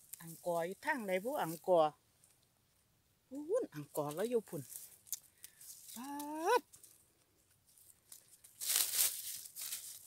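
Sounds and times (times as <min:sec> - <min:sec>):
rustling in dry vegetation: 0:00.0 - 0:02.9, 0:03.8 - 0:10.0.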